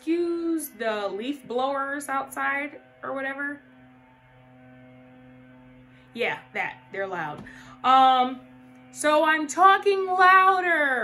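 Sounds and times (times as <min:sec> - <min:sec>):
leaf blowers droning: 0:00.0 - 0:11.0.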